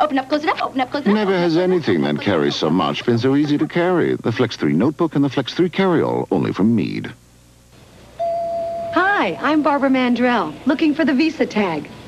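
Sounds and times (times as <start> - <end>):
steady tone: 8.1 - 10.4.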